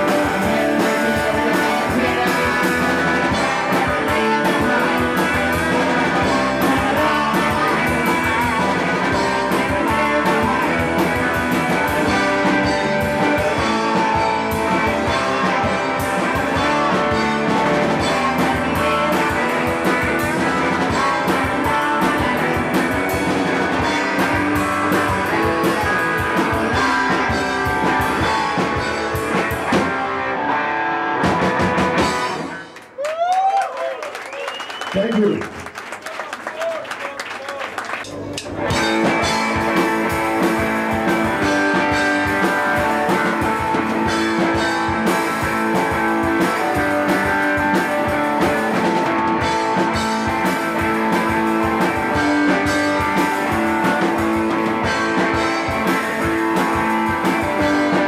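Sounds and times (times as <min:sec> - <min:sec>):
distorted electric guitars: 0:00.0 - 0:32.9, 0:37.9 - 0:58.0
drum kit beating: 0:00.0 - 0:33.6, 0:37.7 - 0:58.0.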